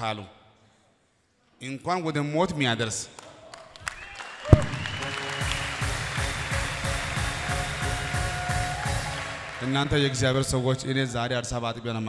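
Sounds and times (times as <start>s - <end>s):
congregation applauding: 3.1s - 11.0s
music with held notes: 5.0s - 9.6s.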